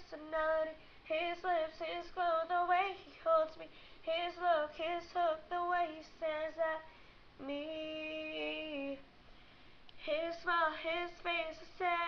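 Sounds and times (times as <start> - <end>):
woman singing unaccompanied: 0.0 - 9.0, 10.0 - 12.0.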